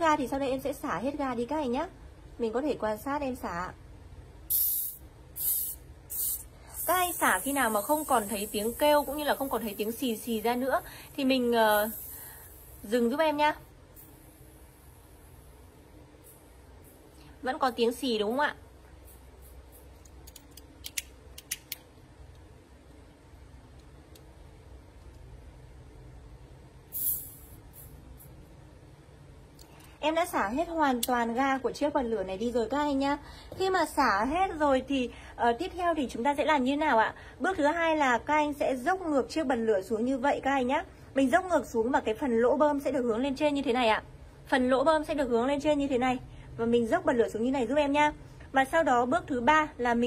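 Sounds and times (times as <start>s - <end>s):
gas hissing from lighter valve: 4.5s - 13.2s, 26.9s - 28.0s.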